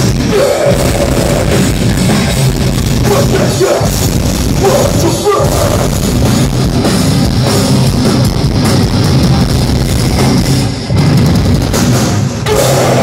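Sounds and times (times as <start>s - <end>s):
hardcore band playing: 0.0s - 13.0s.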